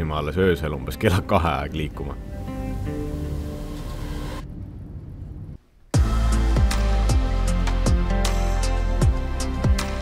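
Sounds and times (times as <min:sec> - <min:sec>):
music with sustained notes: 0:00.0 - 0:04.5, 0:05.9 - 0:10.0.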